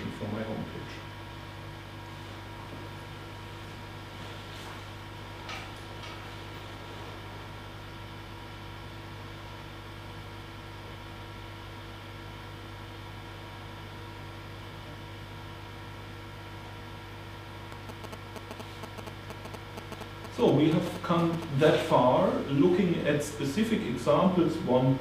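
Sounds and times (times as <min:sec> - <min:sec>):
electrical mains hum: 0:00.0 - 0:25.0
faint clicks: 0:17.7 - 0:21.5.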